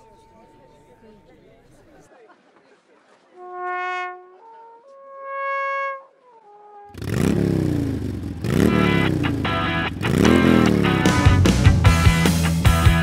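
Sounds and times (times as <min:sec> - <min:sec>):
alphorn note: 0:03.4 - 0:07.0
motorcycle engine revving: 0:06.8 - 0:12.1
rock music with heavy beat: 0:08.7 - 0:13.0.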